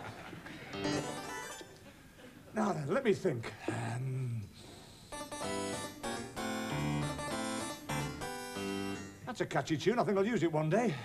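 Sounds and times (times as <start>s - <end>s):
harpsichord melody: 0.7s - 1.8s, 5.1s - 9.4s.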